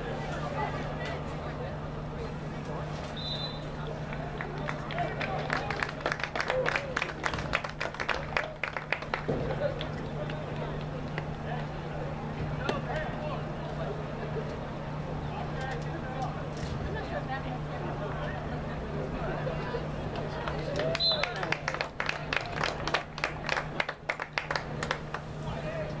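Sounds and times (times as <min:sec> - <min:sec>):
quick even clapping: 0:04.0 - 0:11.7, 0:20.1 - 0:25.3.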